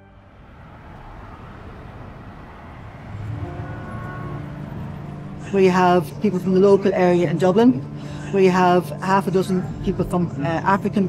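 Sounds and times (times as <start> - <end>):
city traffic hum: 0.0 - 11.0.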